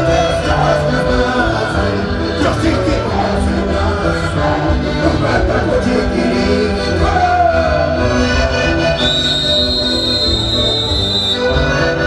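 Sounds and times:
live band playing dance music: 0.0 - 12.0
high-pitched whistle blast: 9.0 - 11.5.

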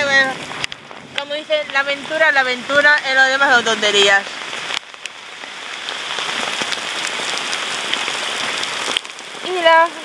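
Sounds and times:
rain and hail pelting an umbrella: 0.0 - 10.0.

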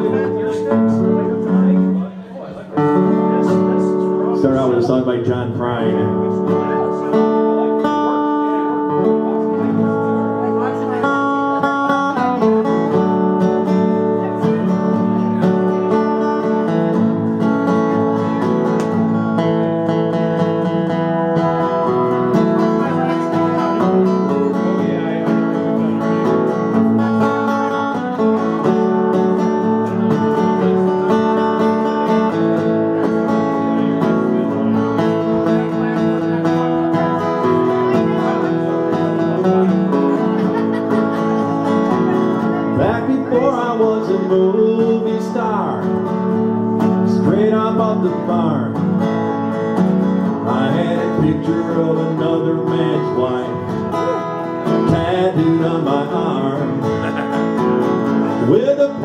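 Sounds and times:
acoustic guitar strumming chords: 0.0 - 59.0.

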